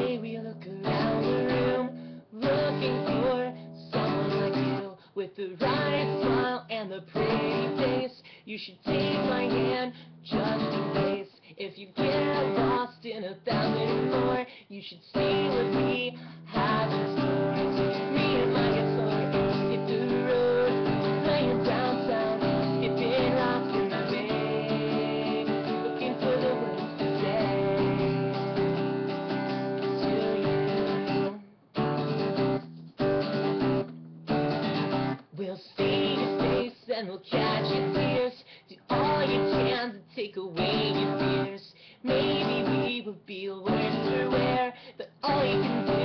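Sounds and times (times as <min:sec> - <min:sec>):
acoustic guitar strumming: 0:00.0 - 0:04.9, 0:05.6 - 0:06.5, 0:07.2 - 0:08.0, 0:08.9 - 0:11.2, 0:12.0 - 0:12.8, 0:13.5 - 0:14.4, 0:15.2 - 0:36.7, 0:37.3 - 0:38.3, 0:38.9 - 0:39.8, 0:40.6 - 0:41.5, 0:42.1 - 0:43.0, 0:43.7 - 0:46.0.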